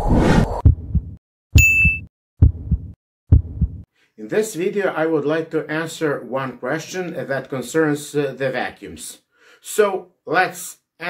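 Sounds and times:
heartbeat-like double thumps: 0.5s - 3.9s
short high ding: 1.6s - 2.1s.

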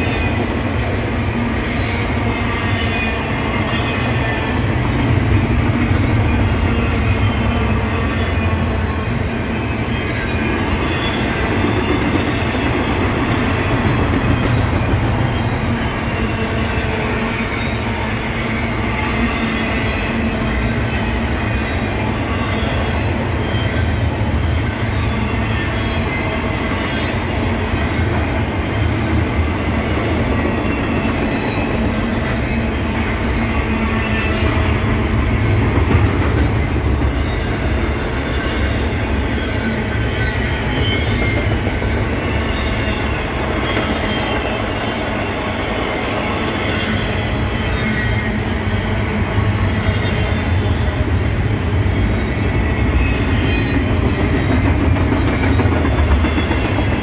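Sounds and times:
high squeal of wheels: 0.0s - 57.0s
steel wheels rumbling on rail: 0.0s - 57.0s.

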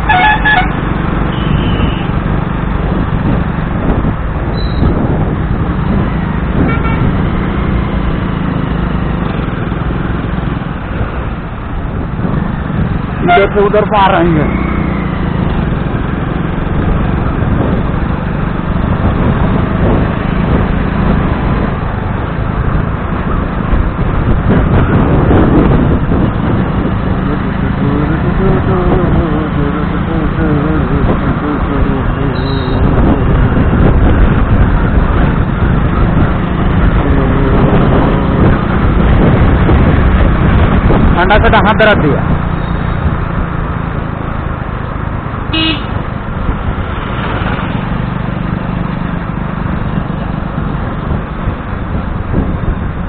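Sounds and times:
motorcycle engine and road noise: 0.0s - 53.0s
wind rushing over microphone: 0.0s - 53.0s.

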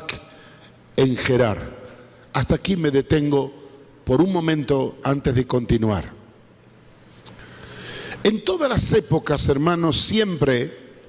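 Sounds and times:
faint steady hum: 0.0s - 11.0s
man speaking through microphone: 1.0s - 6.2s, 8.2s - 10.9s.

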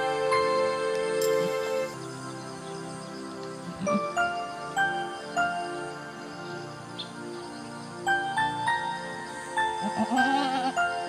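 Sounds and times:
background music with chime-like notes: 0.0s - 11.0s
goat bleating: 9.9s - 10.8s.

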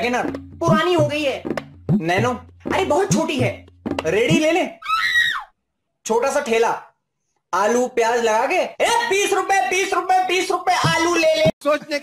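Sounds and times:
shrill scream falling in pitch: 4.8s - 5.5s.

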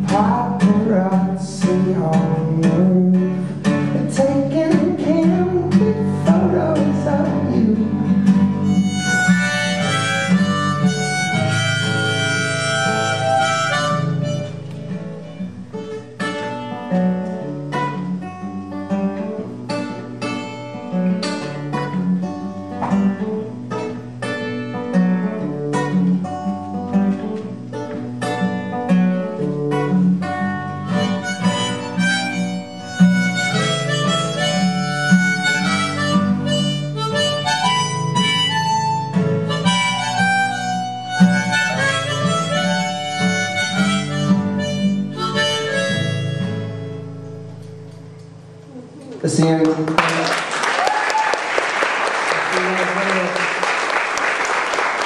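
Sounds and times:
acoustic guitar strumming: 0.0s - 49.4s
harmonica melody: 4.8s - 17.1s, 28.2s - 47.7s.

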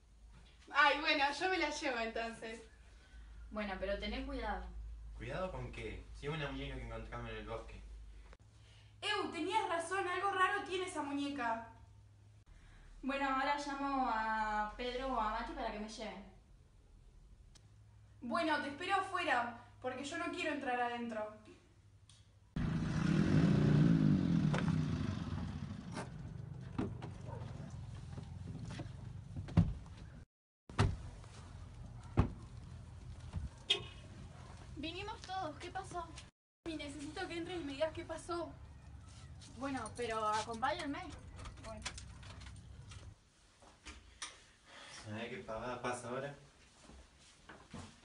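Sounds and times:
truck engine running: 22.6s - 29.4s.

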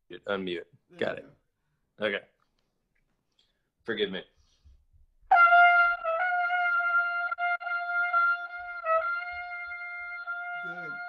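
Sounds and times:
trumpet holding long note: 5.3s - 11.0s.

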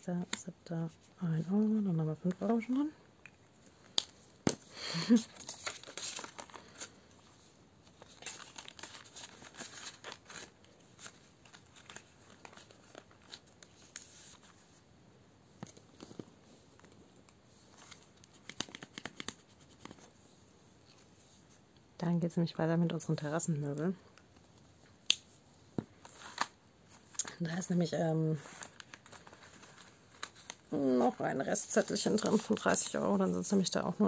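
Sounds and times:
plastic and paper crinkling: 3.5s - 14.7s, 15.6s - 20.2s, 25.8s - 27.7s, 28.3s - 34.0s.

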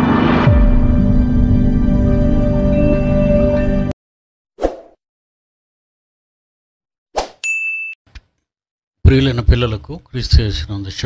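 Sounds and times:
short swish: 4.6s - 5.0s
bright electronic ding: 7.5s - 8.0s.

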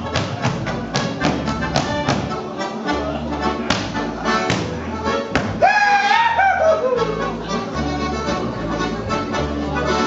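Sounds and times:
accordion dance music: 0.0s - 10.0s
person yodeling: 5.6s - 7.3s.

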